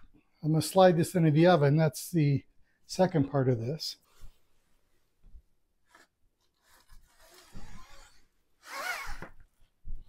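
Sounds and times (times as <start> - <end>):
cloth belt rubbing and scraping: 5.9 - 9.2.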